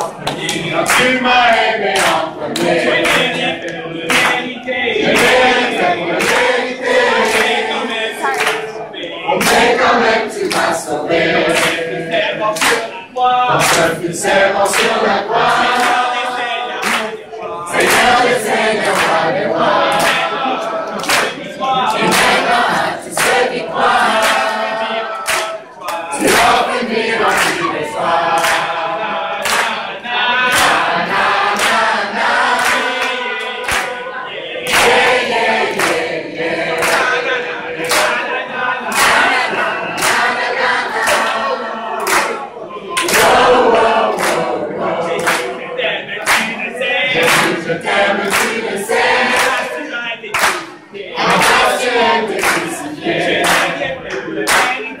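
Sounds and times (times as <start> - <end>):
hand claps: 0.0 - 28.8, 29.4 - 29.8, 30.4 - 38.3, 38.9 - 45.6, 46.2 - 55.0
crowd singing: 0.0 - 55.0.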